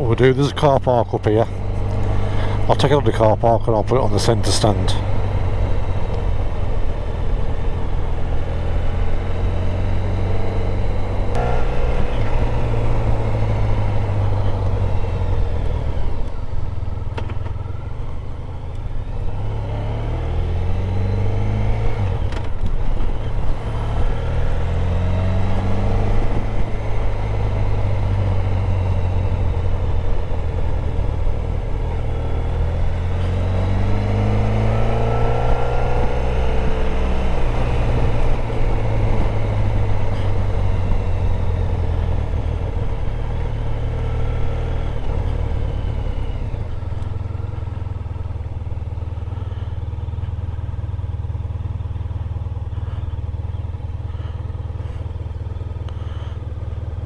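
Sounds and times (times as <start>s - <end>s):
motorcycle engine revving through gears: 0.0s - 57.0s.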